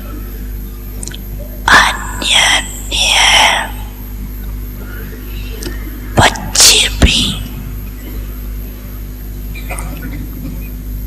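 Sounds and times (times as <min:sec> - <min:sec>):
steady low hum: 0:00.0 - 0:11.0
woman speaking into microphone: 0:01.7 - 0:04.0, 0:06.2 - 0:07.6.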